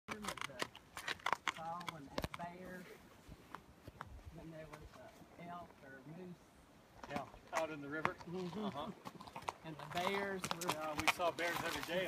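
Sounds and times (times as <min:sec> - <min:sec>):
horse hooves on gravel: 0:00.1 - 0:05.9, 0:07.0 - 0:12.0.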